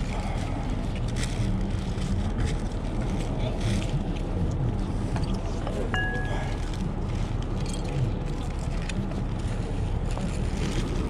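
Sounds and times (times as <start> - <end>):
faint voices: 0.0 - 11.0
low background rumble: 0.0 - 11.0.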